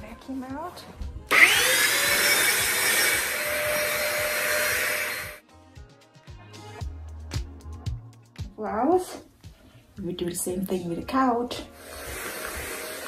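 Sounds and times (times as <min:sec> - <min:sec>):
handheld vacuum cleaner whine: 0:01.3 - 0:05.4, 0:11.8 - 0:13.0.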